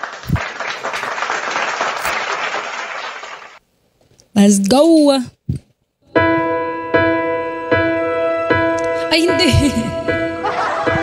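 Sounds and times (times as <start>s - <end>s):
crowd applause: 0.0s - 3.6s.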